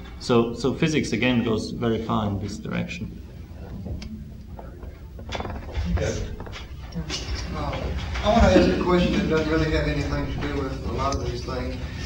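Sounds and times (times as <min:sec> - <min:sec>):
rattling clicks and knocks: 0:04.6 - 0:08.3.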